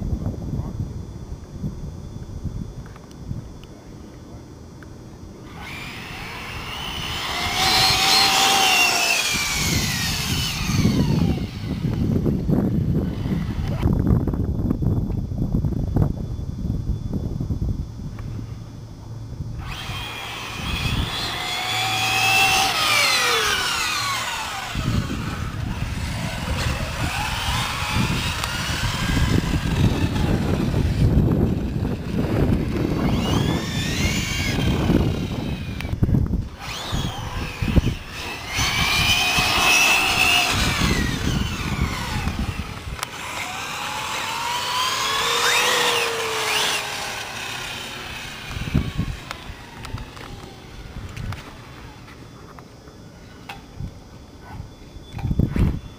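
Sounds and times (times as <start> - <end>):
radio-controlled car motors whining: 5.4 - 14.0, 19.6 - 52.6.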